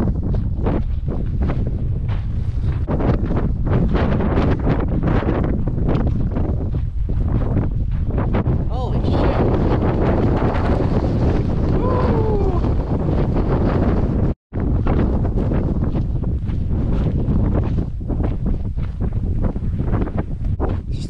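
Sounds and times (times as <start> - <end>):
wind buffeting microphone: 0.0 - 21.0.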